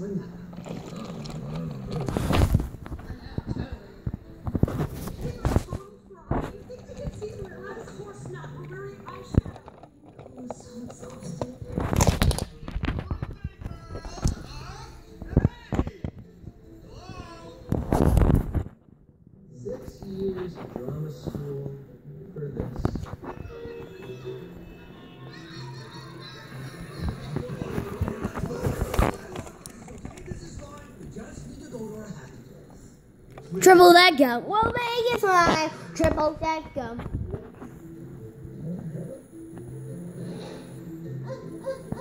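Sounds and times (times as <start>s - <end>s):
faint voices: 19.6s - 42.0s.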